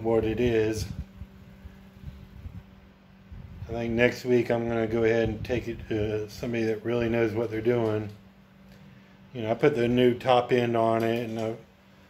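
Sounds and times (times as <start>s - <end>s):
faint low rumble: 0.0s - 10.6s
low steady hum: 0.0s - 12.0s.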